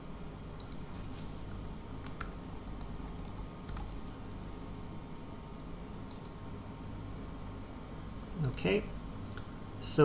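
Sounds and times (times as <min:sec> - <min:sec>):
steady low hum: 0:00.0 - 0:10.0
computer keyboard typing: 0:01.9 - 0:04.1, 0:06.1 - 0:06.4.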